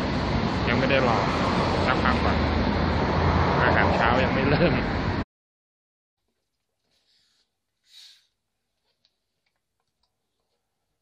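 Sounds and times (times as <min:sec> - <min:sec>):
breathy hiss: 0:07.1 - 0:08.3.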